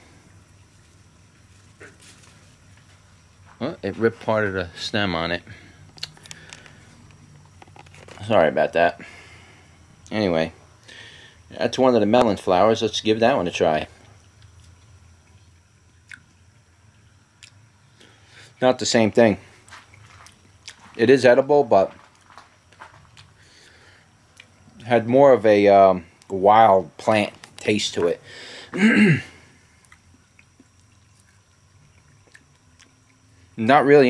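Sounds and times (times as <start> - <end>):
faint background hiss: 0.0 - 34.0
faint chewing: 19.6 - 21.0, 21.9 - 23.4, 29.8 - 33.3.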